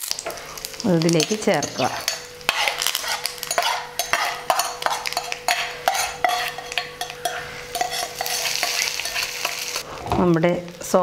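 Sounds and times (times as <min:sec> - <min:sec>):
oil sizzling and crackling: 0:00.0 - 0:11.0
spatula stirring in pan: 0:00.2 - 0:09.9.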